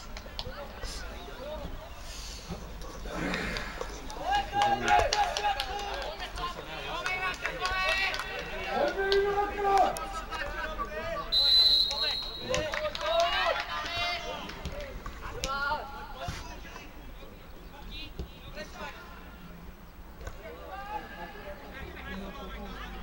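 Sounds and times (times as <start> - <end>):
referee's whistle blast: 11.3 - 12.6.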